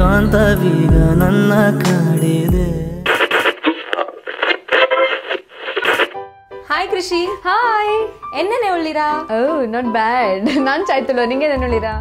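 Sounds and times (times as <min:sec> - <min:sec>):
tinny radio-like sound: 0:03.1 - 0:06.2.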